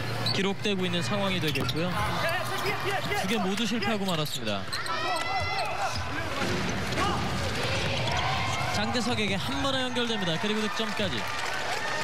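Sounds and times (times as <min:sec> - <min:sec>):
sneakers squeaking: 0:00.0 - 0:08.8
arena crowd noise: 0:00.0 - 0:12.0.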